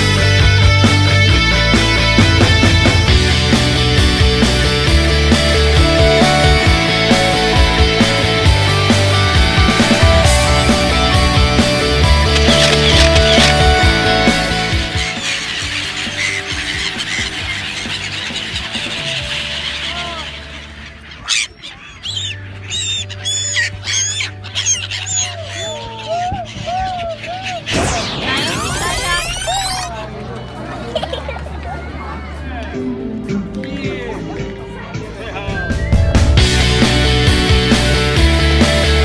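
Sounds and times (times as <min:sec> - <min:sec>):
rock music: 0:00.0 - 0:21.2, 0:27.6 - 0:29.9, 0:32.8 - 0:39.0
gulls calling: 0:00.0 - 0:30.8.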